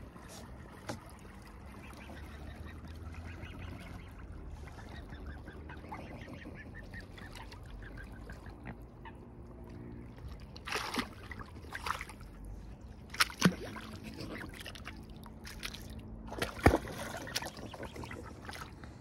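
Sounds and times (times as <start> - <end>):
swans calling softly: 0.0 - 9.9.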